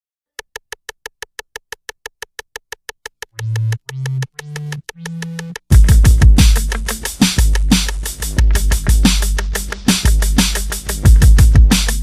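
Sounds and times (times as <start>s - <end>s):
percussive clicks of hip-hop beat: 0.4s - 12.0s.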